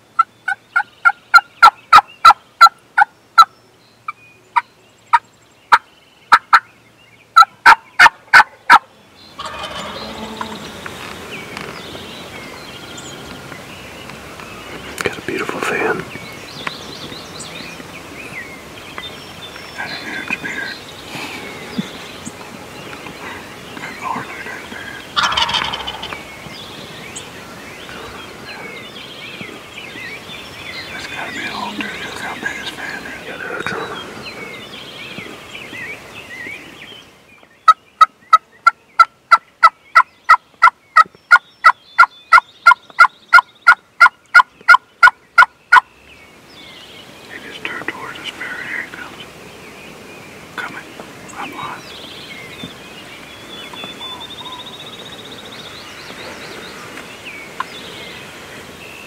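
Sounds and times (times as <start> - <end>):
small birds chirping: 0.0 - 59.0
turkey gobbling: 0.2 - 3.5, 7.4 - 8.8, 9.4 - 10.6, 25.2 - 26.2, 41.6 - 45.9.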